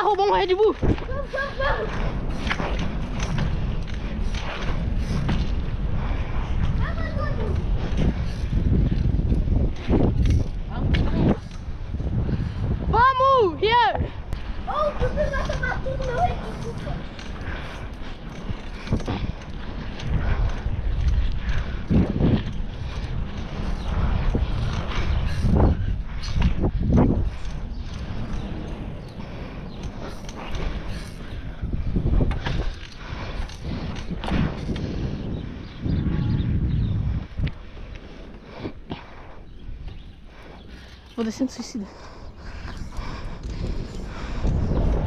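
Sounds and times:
bicycle rolling on pavement: 0.0s - 45.0s
wind buffeting microphone: 0.0s - 45.0s.

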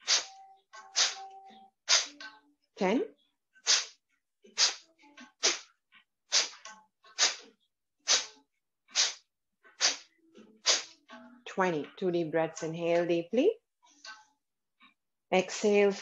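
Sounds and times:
forceful nasal exhalations: 0.0s - 0.3s, 1.0s - 1.2s, 1.9s - 2.1s, 3.6s - 4.0s, 4.6s - 4.8s, 5.4s - 5.7s, 6.3s - 6.6s, 7.2s - 7.5s, 8.1s - 8.3s, 9.0s - 9.2s, 9.8s - 10.9s.

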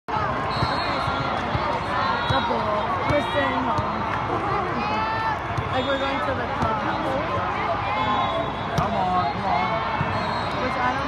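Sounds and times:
many voices chattering: 0.1s - 11.0s.

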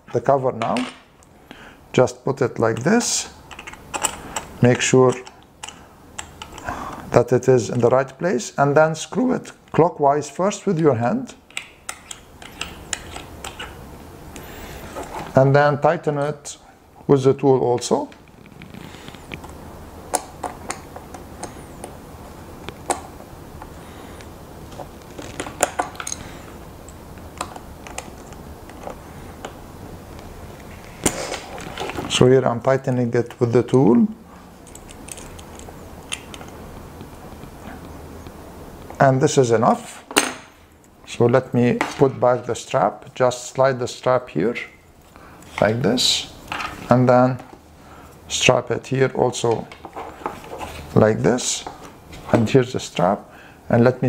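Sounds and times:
low steady hum: 0.0s - 54.0s
faint rubbing and handling: 18.2s - 19.4s, 49.8s - 51.0s.

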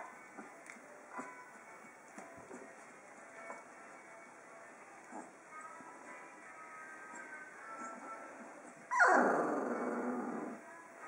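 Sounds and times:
dog crying and growling: 8.9s - 10.6s.

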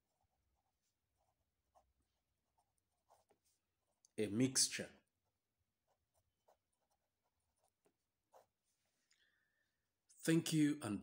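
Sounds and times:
marker pen scratching: 0.0s - 9.0s.

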